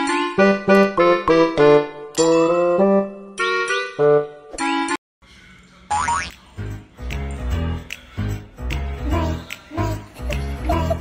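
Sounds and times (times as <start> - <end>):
cartoon boing sound effect: 5.9 - 6.4
background music with rhythmic beat: 6.3 - 11.0.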